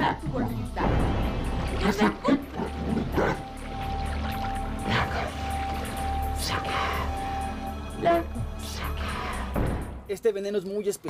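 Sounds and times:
dramatic background music: 0.0 - 10.4.

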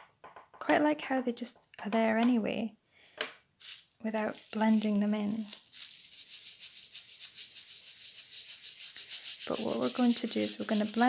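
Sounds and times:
pastel scratching on paper: 4.0 - 11.0.

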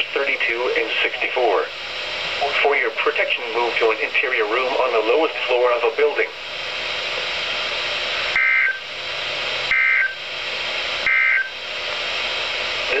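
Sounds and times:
radio static: 0.0 - 13.0.

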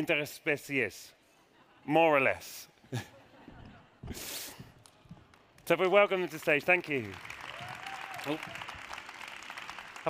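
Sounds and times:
audience applause: 5.6 - 10.0.

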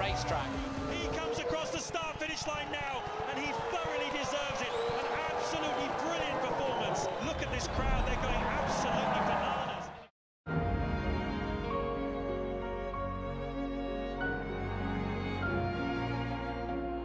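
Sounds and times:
music: 0.0 - 1.4, 10.5 - 17.0
excited shouting voices: 0.0 - 7.8.

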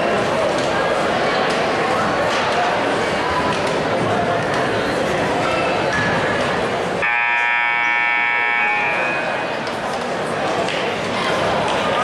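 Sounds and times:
crowd chatter: 0.0 - 12.0
buzzy scoreboard horn blast: 7.0 - 9.5.

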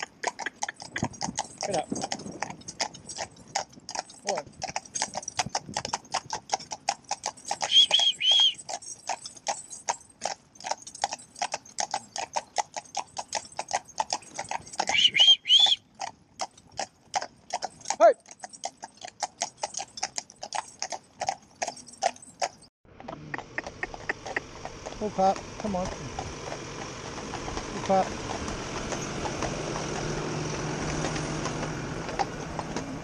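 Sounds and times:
hooves clip-clopping on tarmac: 0.0 - 33.0
short high chirps: 7.6 - 8.6.

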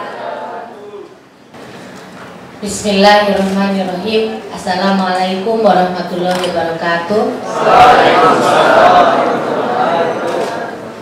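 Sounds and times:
audience answering in chorus: 0.0 - 1.2, 7.4 - 10.8
low hum of a large hall: 0.0 - 11.0.

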